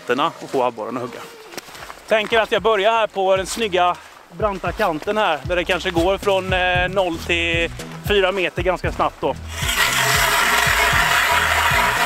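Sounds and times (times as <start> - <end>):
background music with low beat: 2.1 - 12.0
ice auger grinding through ice: 9.5 - 12.0.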